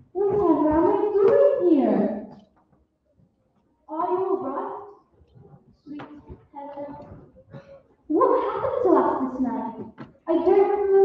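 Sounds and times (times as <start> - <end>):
child speaking muffled: 5.9 - 7.2.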